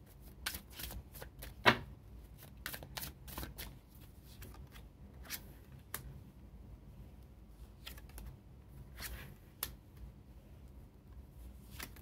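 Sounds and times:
cards shuffled by hand: 0:00.2 - 0:01.6, 0:02.4 - 0:05.4, 0:11.7 - 0:12.0.

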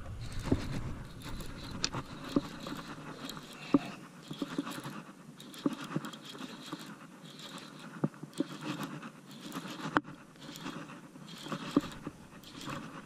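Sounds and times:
fishing reel being cranked: 0:00.6 - 0:13.0.

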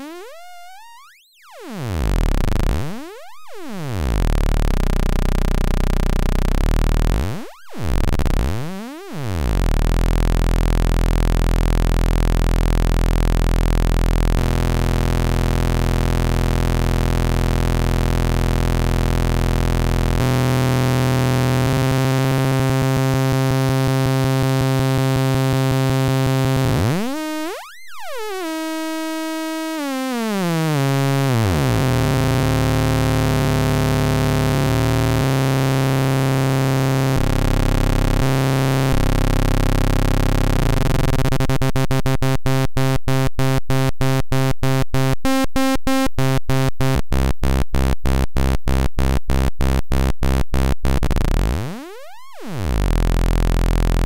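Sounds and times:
buzzy sawtooth synth tone: 0:00.0 - 0:54.0.

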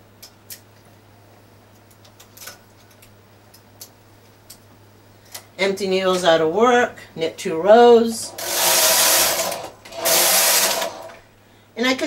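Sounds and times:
knitting machine carriage sliding: 0:08.3 - 0:11.2.

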